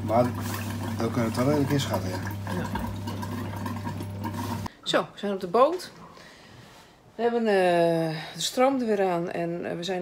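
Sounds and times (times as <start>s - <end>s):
electric water pump humming: 0.0s - 4.7s
water flowing through pipes: 0.0s - 4.7s.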